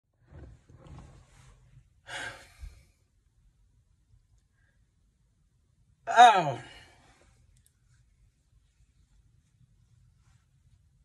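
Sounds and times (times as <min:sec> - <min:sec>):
man breathing: 0:02.0 - 0:03.1
breathy exhale: 0:02.1 - 0:02.9.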